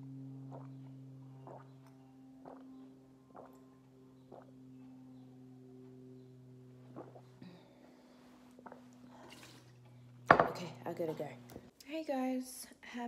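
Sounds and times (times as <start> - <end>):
steady low hum: 0.0 - 11.8
person gulping a drink: 1.4 - 2.7, 6.9 - 7.6, 8.6 - 9.4.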